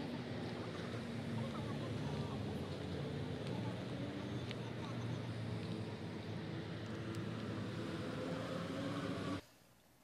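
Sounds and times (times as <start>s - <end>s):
distant road traffic rumble: 0.0s - 9.7s.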